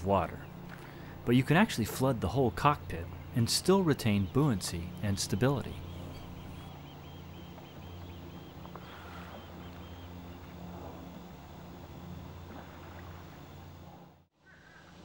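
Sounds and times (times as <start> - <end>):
faint water sound: 0.0 - 15.0
low hum: 0.0 - 15.0.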